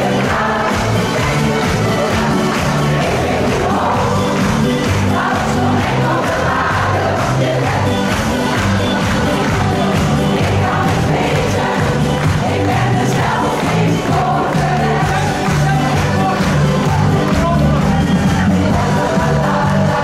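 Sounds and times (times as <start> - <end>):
choir singing a lively song: 0.0 - 20.0
large crowd noise: 0.0 - 20.0
steady bass beat: 0.0 - 20.0.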